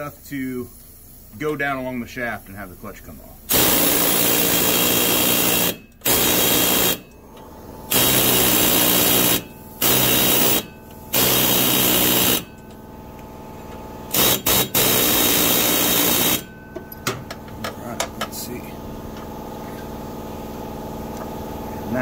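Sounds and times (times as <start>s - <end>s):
pneumatic air hammer bursts: 3.5s - 7.1s, 7.9s - 12.7s, 14.1s - 16.5s.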